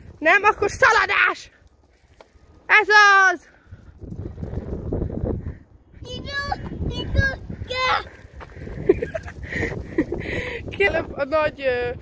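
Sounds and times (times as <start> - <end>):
wind rumble on microphone: 0.0 - 1.2, 3.6 - 12.0.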